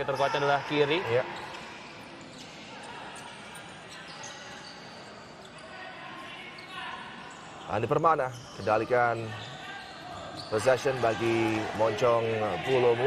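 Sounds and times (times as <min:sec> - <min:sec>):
shoe squeaks on court: 0:01.2 - 0:05.8, 0:06.5 - 0:10.9.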